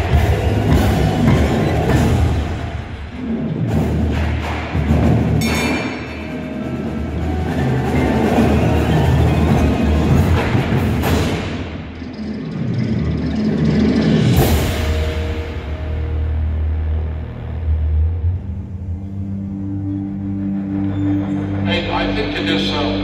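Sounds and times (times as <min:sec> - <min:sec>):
percussion ensemble playing: 0:00.0 - 0:16.4.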